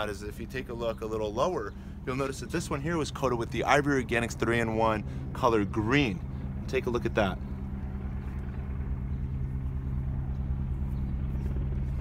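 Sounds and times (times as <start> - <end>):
engine idling drone: 0.0 - 12.0.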